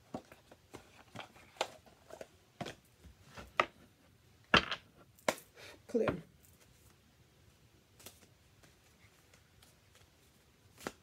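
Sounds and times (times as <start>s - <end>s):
cards being shuffled: 8.0s - 11.0s.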